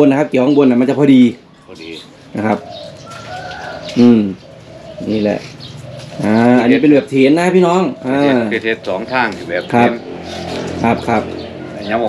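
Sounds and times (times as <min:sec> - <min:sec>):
doves cooing: 0:00.0 - 0:12.0.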